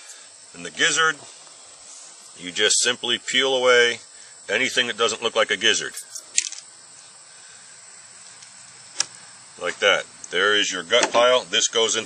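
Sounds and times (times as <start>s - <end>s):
faint outdoor background hiss: 0.0s - 12.0s.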